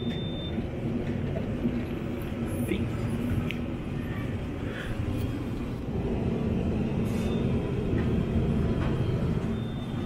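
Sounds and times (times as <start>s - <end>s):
supermarket background rumble and hum: 0.0s - 10.0s.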